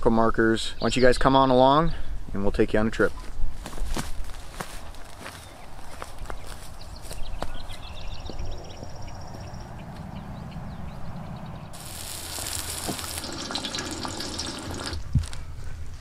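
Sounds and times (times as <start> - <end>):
birds chirping: 0.4 - 1.8, 4.9 - 15.0
food sizzling on griddle: 11.8 - 15.0.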